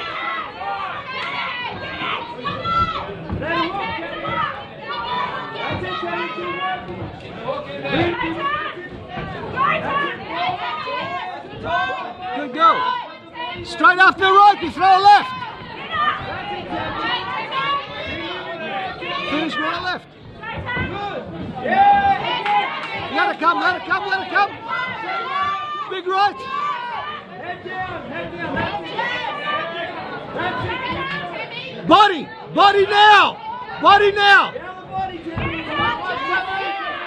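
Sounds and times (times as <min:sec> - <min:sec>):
crowd chatter: 0:00.0 - 0:37.0.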